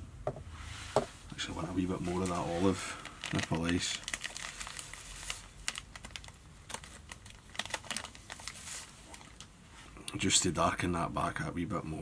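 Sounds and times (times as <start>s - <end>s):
fiber crinkling and rustling: 0.6s - 10.0s.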